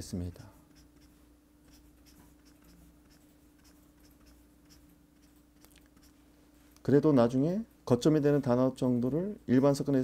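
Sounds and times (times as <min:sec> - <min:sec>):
faint electrical hum: 0:00.0 - 0:10.0
highlighter rubbing on paper: 0:00.6 - 0:06.2.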